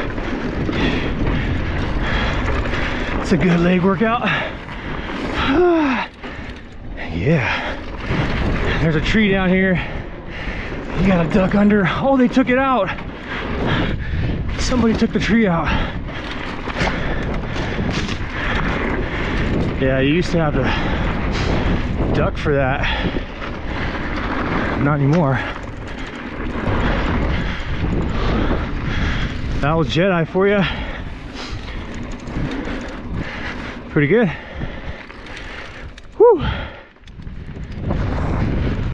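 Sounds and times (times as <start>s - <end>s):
bike rattling over bumps: 0.0s - 38.9s
tyres on dirt and rushing air: 0.0s - 38.9s
wind on microphone: 0.0s - 38.9s.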